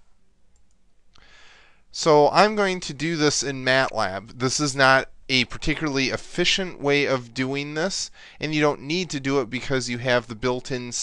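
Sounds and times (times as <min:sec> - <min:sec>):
faint clicks: 0:00.5 - 0:01.3
person breathing in: 0:01.2 - 0:01.9, 0:08.1 - 0:08.4
person speaking: 0:01.9 - 0:11.0.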